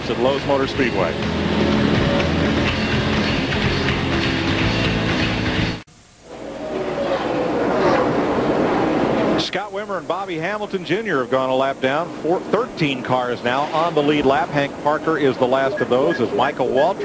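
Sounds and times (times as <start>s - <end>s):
race car engine onboard: 0.0s - 5.8s
stock cars on track: 0.0s - 5.8s, 10.4s - 17.0s.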